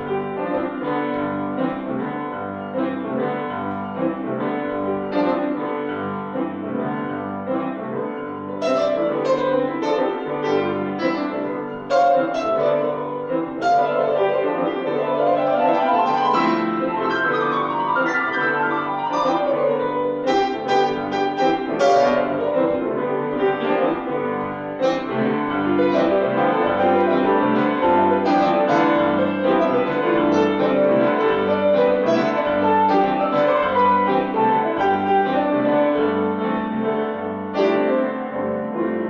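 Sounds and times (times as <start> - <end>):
grand pianos playing a duet: 0.0 - 39.0.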